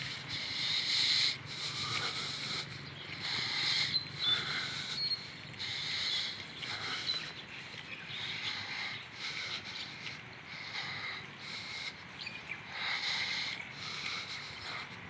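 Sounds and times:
man breathing: 0.0s - 15.0s.

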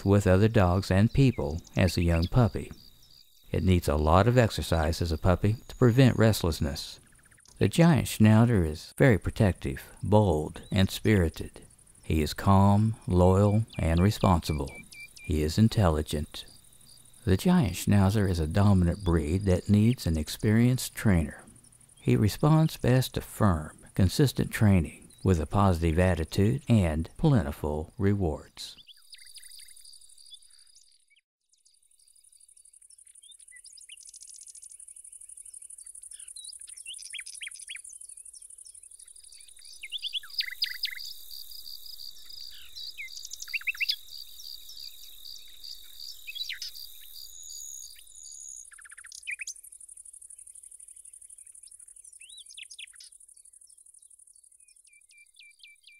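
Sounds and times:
insects trilling: 0.0s - 27.1s, 28.9s - 31.0s, 31.6s - 55.9s
birds chirping: 0.0s - 55.9s.

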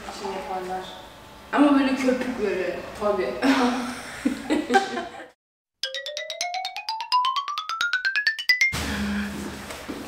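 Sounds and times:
ascending mallet notes: 5.8s - 9.3s.

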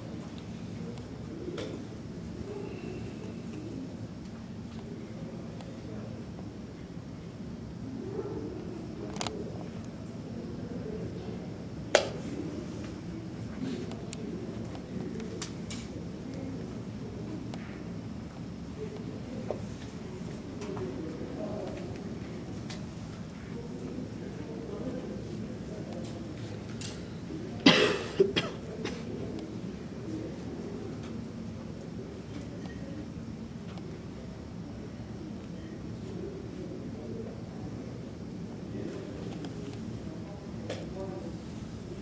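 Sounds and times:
low background murmur: 0.0s - 42.0s
person coughing: 27.6s - 29.0s.

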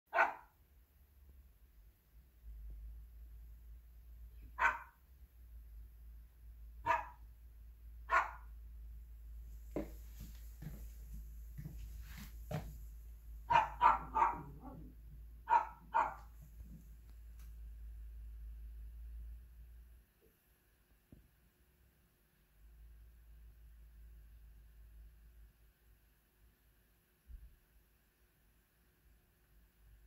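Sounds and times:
small dog barking: 0.1s - 0.6s, 4.4s - 5.0s, 6.8s - 7.3s, 8.0s - 8.6s, 13.4s - 16.4s.

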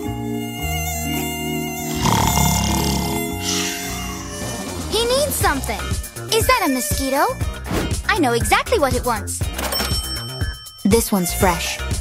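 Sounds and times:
background music: 0.0s - 12.0s
mosquito whine sound effect: 0.6s - 4.9s.

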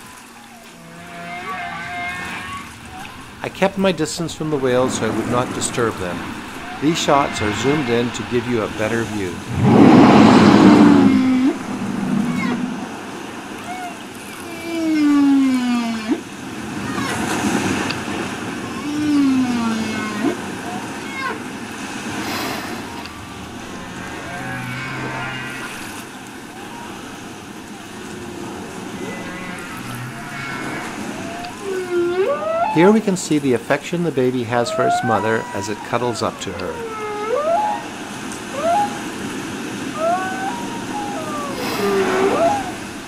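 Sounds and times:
ocean noise hiss: 0.0s - 43.0s
whale blowing at surface: 4.4s - 16.2s, 17.2s - 20.6s, 21.3s - 32.8s, 36.8s - 43.0s.

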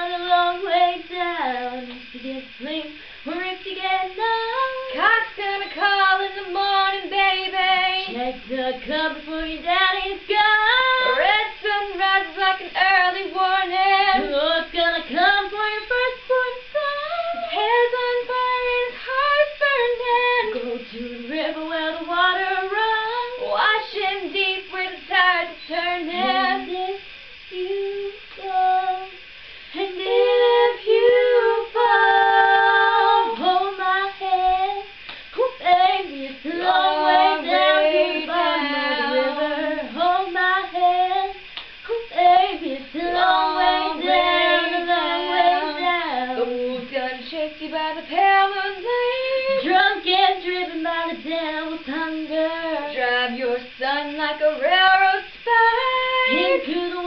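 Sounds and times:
women singing unaccompanied: 0.0s - 57.0s.

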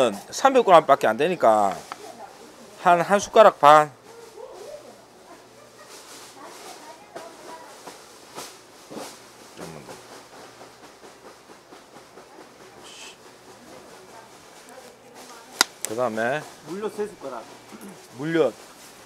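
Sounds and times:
low background noise: 0.0s - 19.0s.

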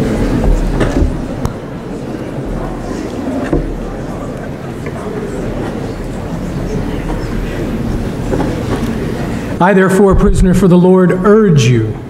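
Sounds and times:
congregation rustling and shuffling: 0.0s - 12.0s.

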